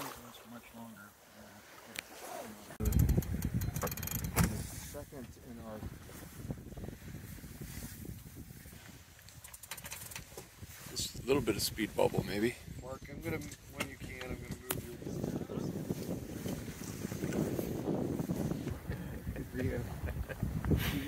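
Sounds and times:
wind rumbling on microphone: 2.8s - 21.0s.

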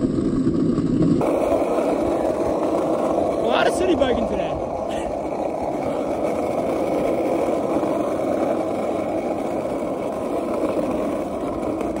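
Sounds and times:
tyres rolling on pavement: 0.0s - 12.0s.

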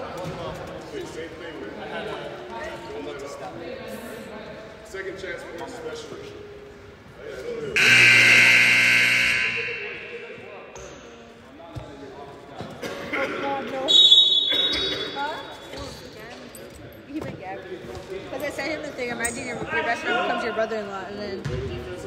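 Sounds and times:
scoreboard buzzer: 7.8s - 10.5s
short high whistle: 13.9s - 15.0s.

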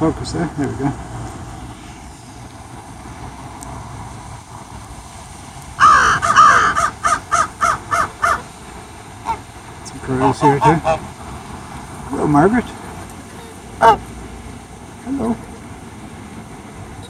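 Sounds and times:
loud bird calls: 5.8s - 8.6s, 9.2s - 9.5s.

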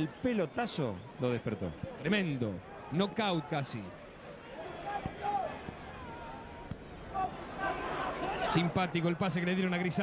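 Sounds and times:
distant crowd shouts: 2.6s - 8.8s.

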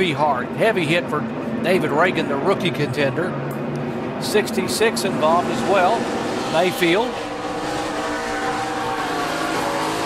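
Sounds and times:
race car engine: 0.0s - 10.0s.

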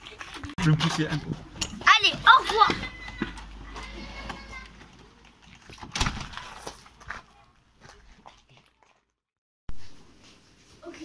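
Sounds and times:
glazed door banging shut: 5.8s - 6.6s.

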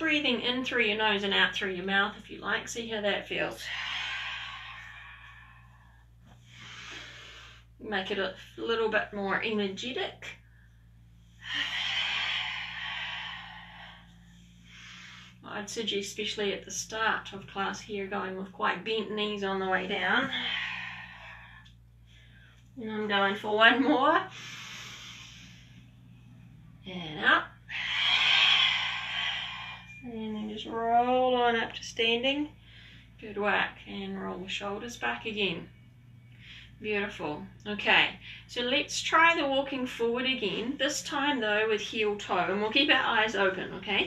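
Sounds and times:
woman inhaling through the nose: 6.4s - 7.8s, 24.3s - 25.8s.

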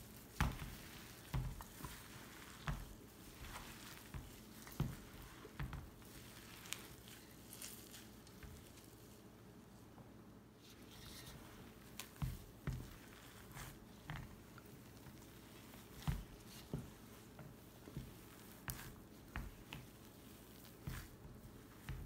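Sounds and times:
hands mixing food in metal bowl: 0.0s - 9.9s, 10.6s - 22.0s.

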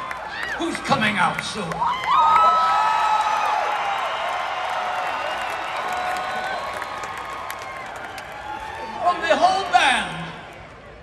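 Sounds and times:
crowd cheering and whooping: 0.0s - 0.7s, 1.8s - 9.9s
applause: 0.0s - 9.8s.

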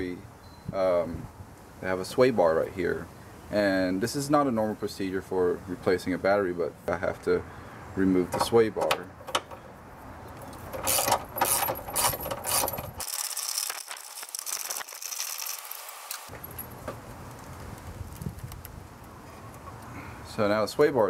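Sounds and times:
ratchet wrench clicking: 10.7s - 16.2s.

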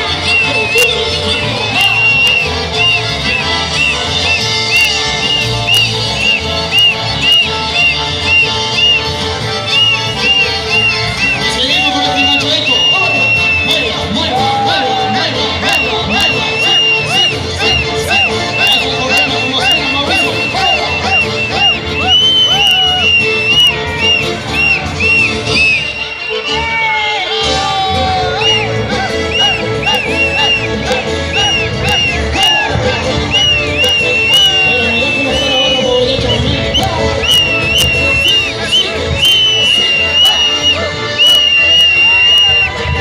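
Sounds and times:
folk dance music: 0.0s - 43.0s
high whistle-like note: 1.7s - 9.1s, 36.7s - 42.8s.

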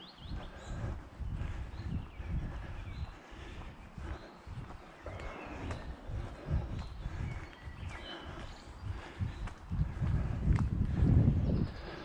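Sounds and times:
bird singing: 0.0s - 9.8s, 11.4s - 12.0s
footsteps thudding on microphone: 3.0s - 11.4s.

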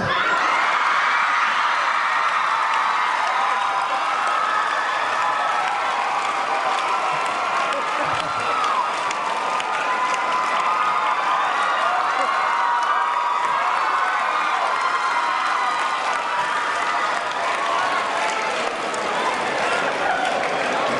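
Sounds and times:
audience cheering and screaming: 0.0s - 20.9s
applause: 0.3s - 20.9s.

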